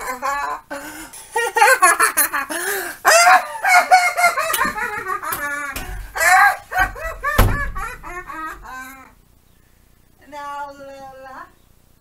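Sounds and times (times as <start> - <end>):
person laughing high-pitched: 0.0 - 9.1.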